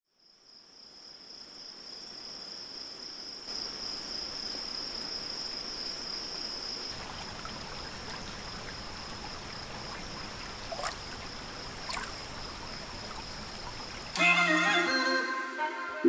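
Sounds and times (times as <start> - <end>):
crickets chirping: 0.1 - 14.2.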